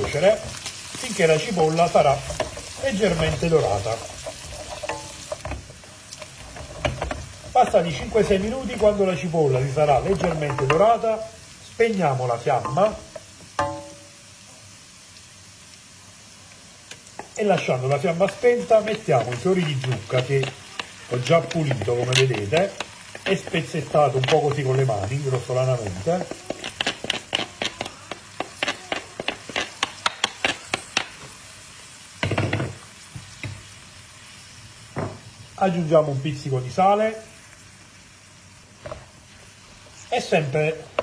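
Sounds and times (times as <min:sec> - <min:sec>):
wooden spoon tapping and scraping: 0:00.0 - 0:11.0, 0:12.6 - 0:14.0, 0:17.1 - 0:31.4, 0:40.8 - 0:41.0
food sizzling in a frying pan: 0:00.0 - 0:41.0.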